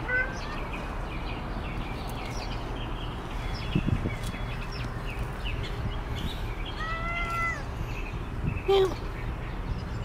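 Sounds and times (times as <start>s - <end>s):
cat meowing: 0.0s - 0.7s, 6.8s - 7.7s.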